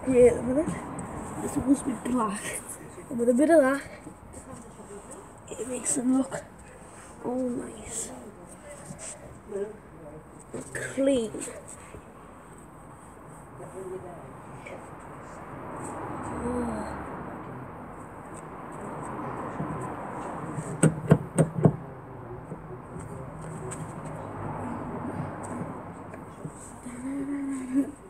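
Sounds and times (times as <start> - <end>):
knocks on car door: 20.8 - 21.8.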